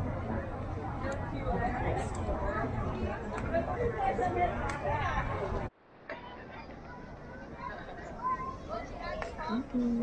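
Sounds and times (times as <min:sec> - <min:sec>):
people chatting in background: 0:00.0 - 0:10.0
steady outdoor hum: 0:00.0 - 0:10.0.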